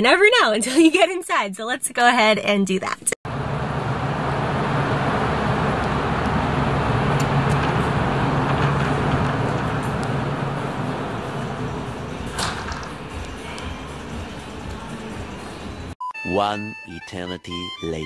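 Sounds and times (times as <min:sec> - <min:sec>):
street traffic hum: 0:03.2 - 0:16.0.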